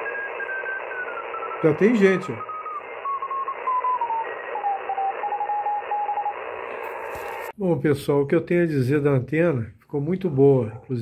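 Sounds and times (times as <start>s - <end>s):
morse code tone: 0.0s - 7.5s
receiver hiss: 0.0s - 7.6s.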